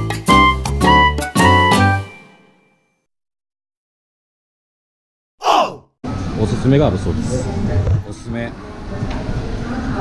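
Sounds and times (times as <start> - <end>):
person sighing: 5.4 - 5.9.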